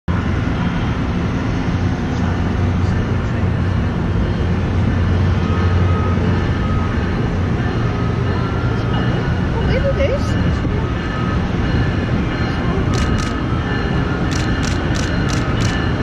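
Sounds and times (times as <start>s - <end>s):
train rumbling and humming: 0.1s - 16.0s.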